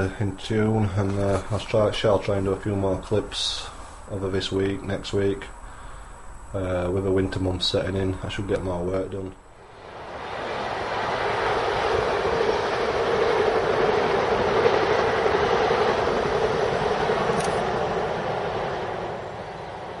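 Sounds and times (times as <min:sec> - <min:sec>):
passenger train passing: 0:08.6 - 0:20.0.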